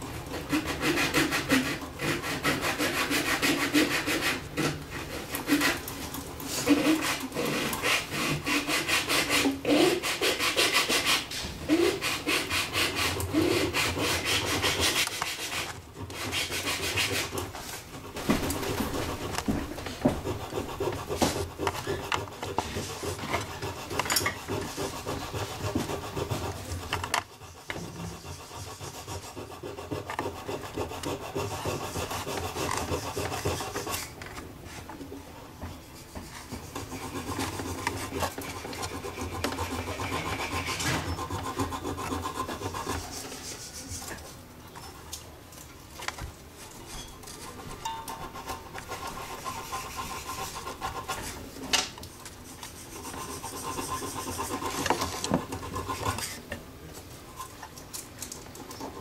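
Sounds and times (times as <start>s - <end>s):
brush scratching on wood: 0.4s - 34.9s, 35.8s - 44.4s, 46.6s - 56.4s.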